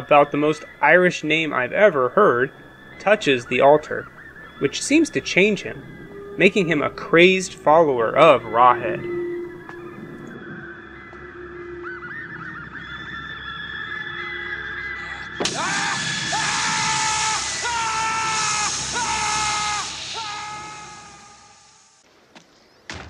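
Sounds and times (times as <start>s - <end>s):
eerie gliding synthesizer tones: 0.0s - 22.0s
held shrill tones: 0.0s - 22.0s
hiss: 15.4s - 22.0s
sudden loud swell: 15.4s - 22.0s.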